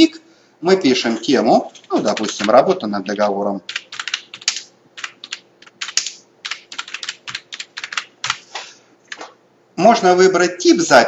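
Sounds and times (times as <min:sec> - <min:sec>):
typing on computer keyboard: 0:01.7 - 0:08.4.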